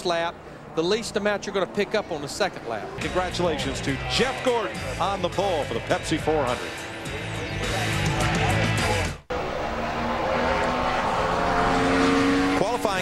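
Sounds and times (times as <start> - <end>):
race car engine at full throttle: 8.2 - 13.0.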